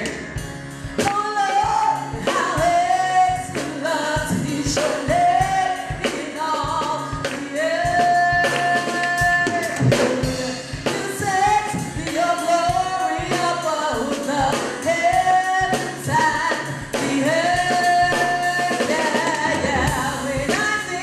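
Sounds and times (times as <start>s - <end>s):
drums and bass backing: 0.0s - 21.0s
woman singing gospel song: 0.0s - 21.0s.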